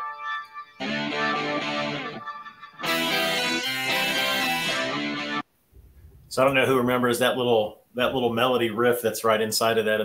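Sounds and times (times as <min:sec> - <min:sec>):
distorted electric guitar chords: 0:00.0 - 0:05.4.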